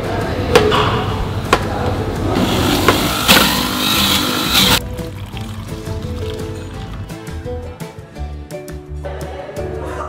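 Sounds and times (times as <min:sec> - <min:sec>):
background music: 0:00.0 - 0:10.0
electric blender running: 0:02.4 - 0:04.8.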